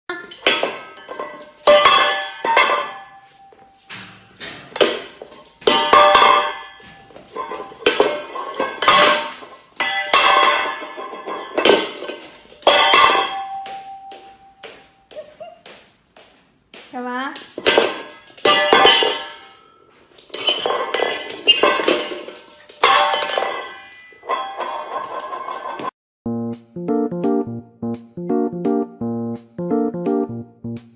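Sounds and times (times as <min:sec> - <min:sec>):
metal bowl clattering on floor: 0:00.2 - 0:03.3, 0:03.9 - 0:14.1, 0:17.6 - 0:19.6, 0:20.2 - 0:25.9.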